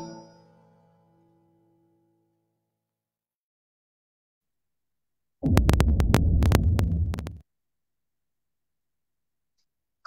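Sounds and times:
loud low hum: 5.4s - 7.4s.

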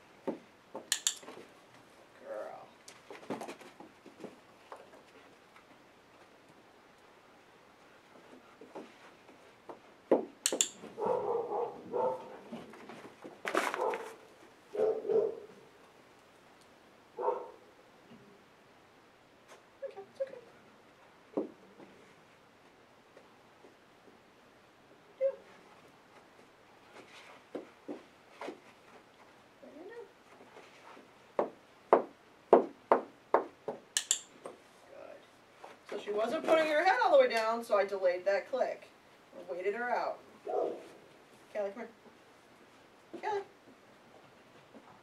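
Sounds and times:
training clicker click: 10.4s - 10.8s, 34.0s - 34.3s
dog barking: 11.0s - 12.4s, 13.8s - 15.6s, 17.2s - 17.6s, 40.4s - 41.0s.

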